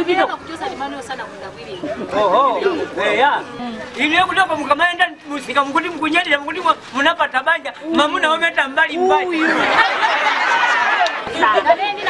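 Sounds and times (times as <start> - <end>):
people talking and chattering: 0.0 - 12.0.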